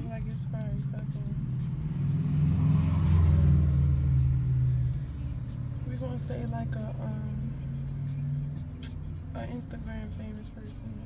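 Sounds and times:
vehicle passing close by: 0:00.0 - 0:09.2
low traffic hum: 0:00.0 - 0:11.0.

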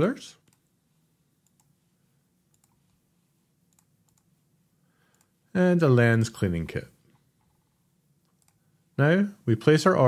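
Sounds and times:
faint computer mouse clicks: 0:01.4 - 0:01.7, 0:02.5 - 0:03.0, 0:03.7 - 0:04.3, 0:05.1 - 0:05.3, 0:08.2 - 0:08.6.

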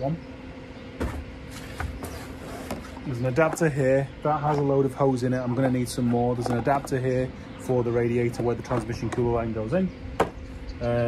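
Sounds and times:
knock on cardboard box: 0:01.0 - 0:01.3, 0:10.2 - 0:10.4.

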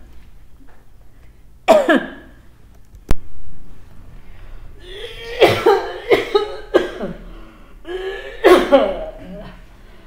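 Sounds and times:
person coughing hoarsely: 0:01.7 - 0:02.4, 0:04.8 - 0:09.7.

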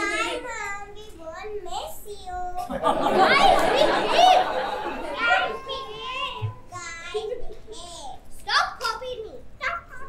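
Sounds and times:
children shouting: 0:02.9 - 0:06.8.

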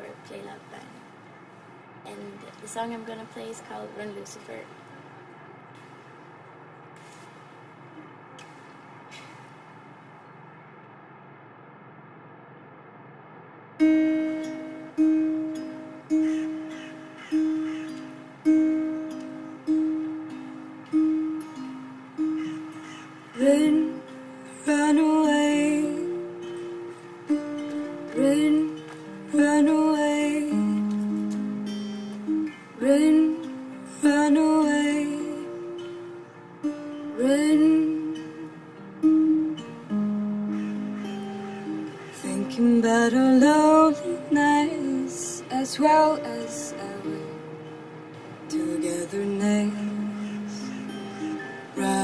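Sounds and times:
acoustic guitar picking: 0:00.0 - 0:10.7, 0:13.8 - 0:52.0
woman singing: 0:23.3 - 0:26.9, 0:27.7 - 0:31.7, 0:32.7 - 0:36.2, 0:37.1 - 0:38.7, 0:41.7 - 0:47.8, 0:48.4 - 0:52.0.

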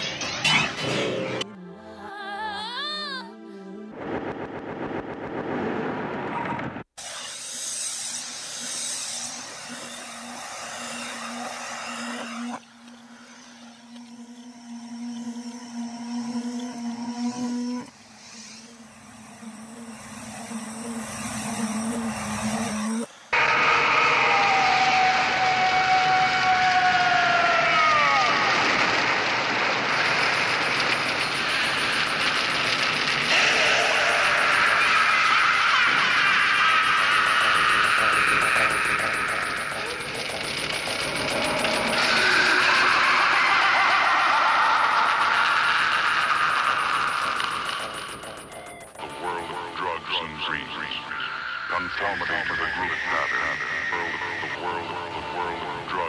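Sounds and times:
hissing machine-like noise: 0:07.0 - 0:14.1, 0:17.9 - 0:56.0
rushing noise with sliding whistles: 0:17.9 - 0:40.5, 0:41.2 - 0:56.0.

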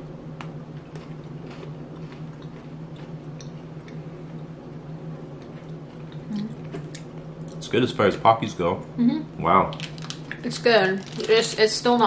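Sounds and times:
steady low hum: 0:00.0 - 0:12.0
people chewing crunchy biscuits: 0:00.7 - 0:04.5.

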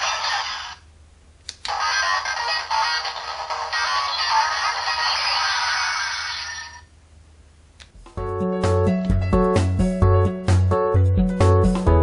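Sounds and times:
toy speaker playing music: 0:01.7 - 0:06.8.

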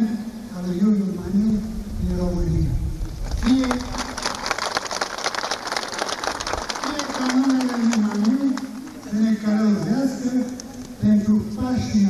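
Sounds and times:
crowd applauding: 0:03.3 - 0:09.6
man's voice: 0:03.4 - 0:04.4, 0:06.8 - 0:12.0.

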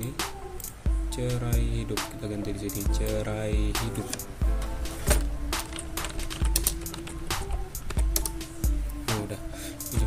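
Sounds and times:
background music with low beats: 0:00.0 - 0:10.0
computer keyboard typing: 0:05.0 - 0:08.4.

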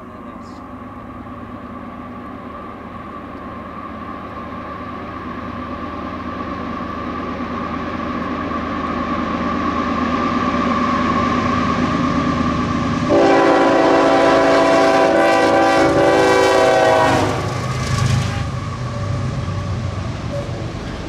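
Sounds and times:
diesel locomotives passing: 0:00.0 - 0:21.0
locomotive wheel noise: 0:00.0 - 0:21.0
locomotive air horn blast: 0:13.1 - 0:17.6.

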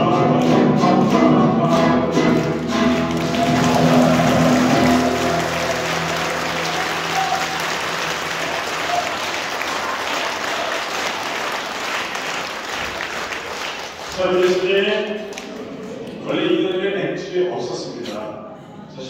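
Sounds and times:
audience clapping: 0:02.3 - 0:16.8
held musical chord: 0:03.0 - 0:09.7.

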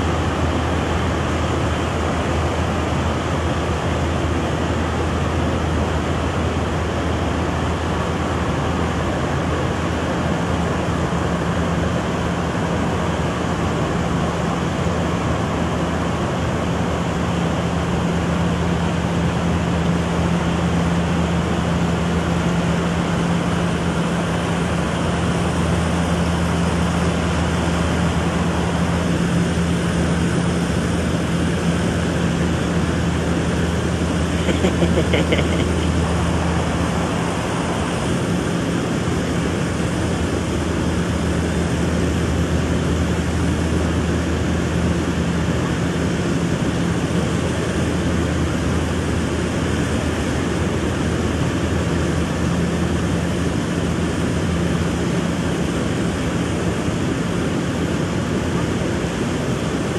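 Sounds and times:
harvester engine droning: 0:00.0 - 0:59.8.

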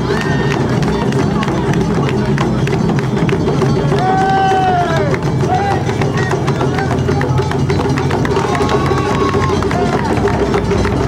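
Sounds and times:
crowd noise: 0:00.0 - 0:11.0
large taiko drum beat: 0:00.0 - 0:11.0
long held shout: 0:04.0 - 0:06.3, 0:08.3 - 0:10.3.

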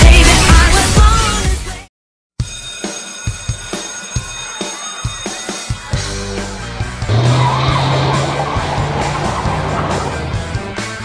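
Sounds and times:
rock music: 0:02.4 - 0:11.0
car tyres screeching: 0:07.0 - 0:10.5.

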